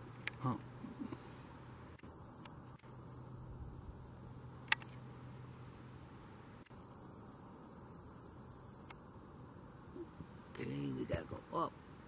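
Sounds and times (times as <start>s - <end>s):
faint low hum and hiss: 0.0s - 12.0s
sharp click: 4.6s - 5.0s.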